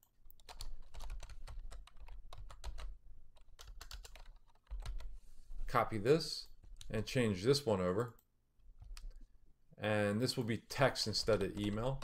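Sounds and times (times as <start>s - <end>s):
typing on computer keyboard: 0.0s - 5.1s, 8.8s - 9.2s.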